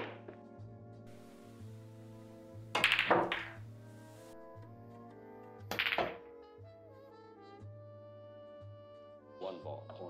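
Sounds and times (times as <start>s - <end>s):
pool balls clacking together: 0.0s - 0.4s, 2.8s - 3.6s, 5.7s - 6.2s
background music with sustained tones: 0.0s - 10.0s.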